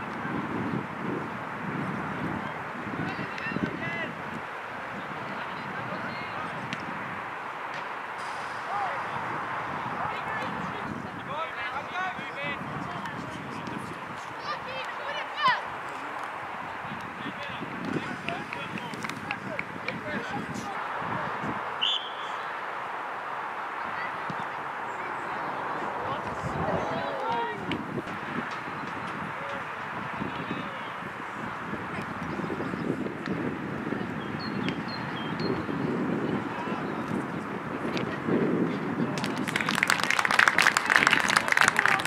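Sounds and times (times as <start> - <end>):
steady outdoor hiss: 0.0 - 42.0
distant shouts: 14.3 - 16.8, 20.6 - 27.9
shrill whistle blast: 21.8 - 22.4
spectators clapping: 39.1 - 42.0.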